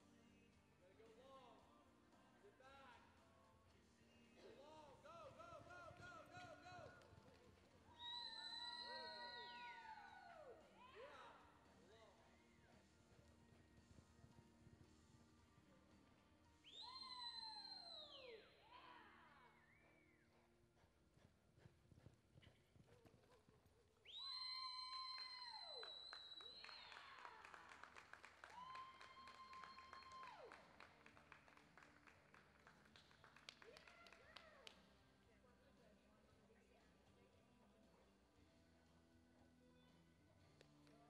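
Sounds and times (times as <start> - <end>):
crowd whistling shrilly: 8.0 - 10.2, 16.7 - 18.5, 24.1 - 27.2.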